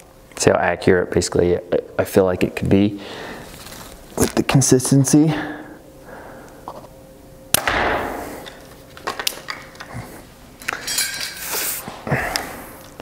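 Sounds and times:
compound bow shot: 0:07.5 - 0:08.4.

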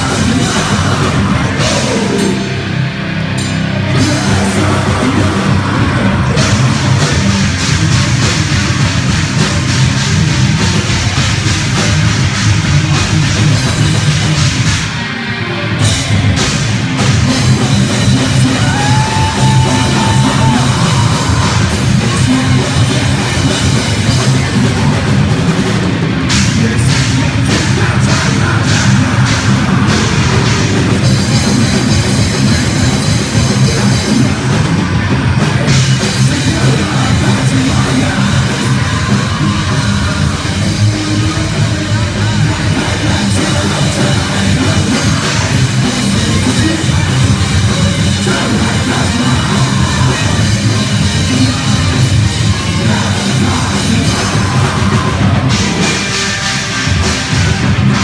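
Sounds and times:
fast drumming: 0:00.0 - 0:02.7, 0:03.8 - 0:15.1, 0:15.8 - 0:58.0
heavy metal band playing: 0:00.0 - 0:58.0.

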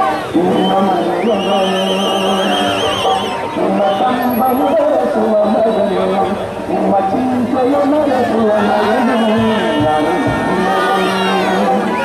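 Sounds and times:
crowd shouting and chanting: 0:00.0 - 0:12.0
high warbling whistle tone: 0:00.5 - 0:04.8.

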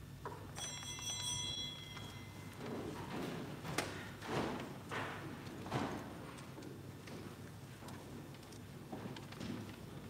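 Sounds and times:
small high-pitched bell ringing: 0:00.5 - 0:02.7.

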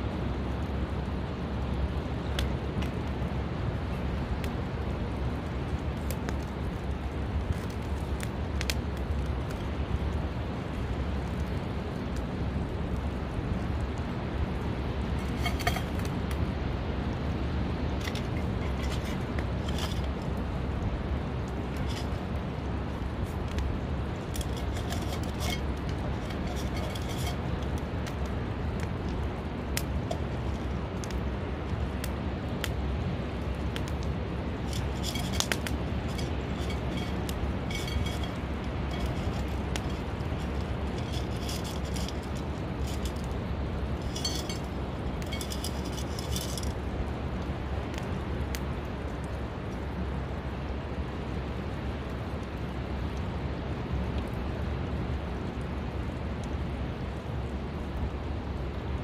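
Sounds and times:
steady outdoor rumble: 0:00.0 - 0:59.0
shells clinking against metal cup: 0:44.0 - 0:46.7.

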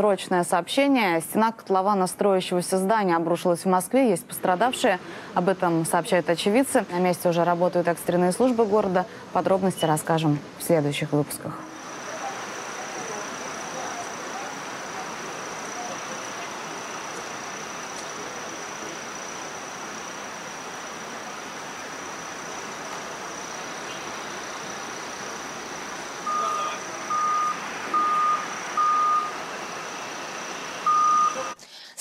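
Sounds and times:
outdoor background noise: 0:00.0 - 0:32.0
vehicle reversing alarm beeping: 0:11.8 - 0:19.6, 0:26.0 - 0:31.6.

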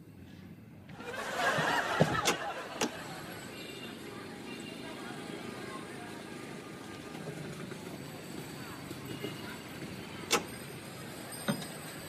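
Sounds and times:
casement window swinging open: 0:01.4 - 0:03.0.

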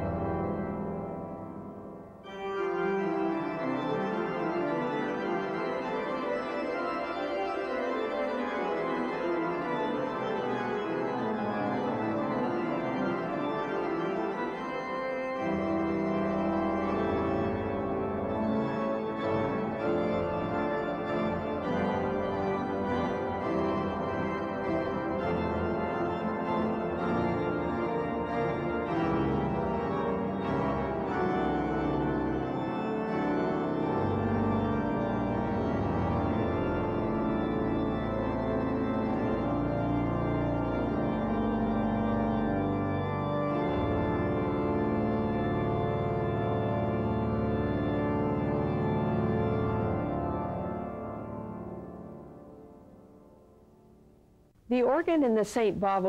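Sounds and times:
pipe organ chords: 0:00.0 - 0:53.8
deep organ bass notes: 0:06.8 - 0:52.6.

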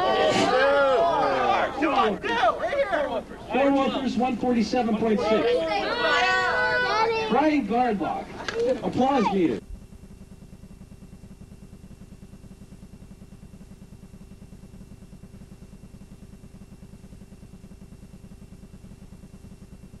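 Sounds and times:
faint hum tones: 0:00.0 - 0:20.0
pulsing low buzz: 0:00.0 - 0:20.0.

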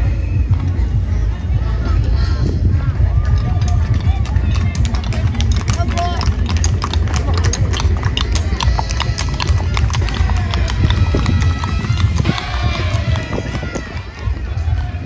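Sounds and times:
horse hooves on asphalt: 0:00.0 - 0:15.0.

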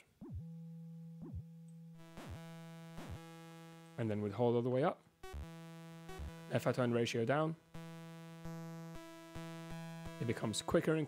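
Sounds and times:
synthesizer low note with pitch swoops: 0:00.0 - 0:04.2, 0:05.2 - 0:06.8.

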